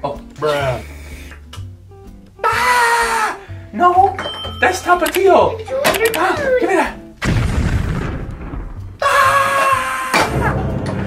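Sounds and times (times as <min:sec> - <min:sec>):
deep boom: 0:07.2 - 0:09.0
low hit: 0:07.2 - 0:09.0.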